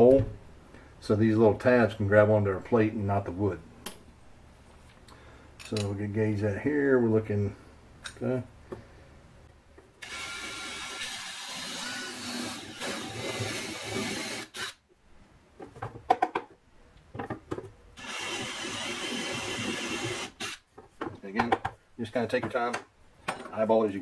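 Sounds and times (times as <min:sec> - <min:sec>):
drill motor whining: 0:10.0 - 0:14.8, 0:18.0 - 0:20.6.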